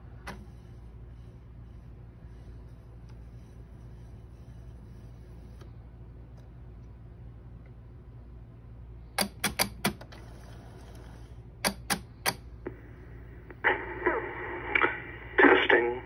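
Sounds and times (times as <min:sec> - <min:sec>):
answering machine clicking: 0:09.2 - 0:10.3, 0:11.6 - 0:12.5
recorded voice message playback: 0:12.7 - 0:16.0.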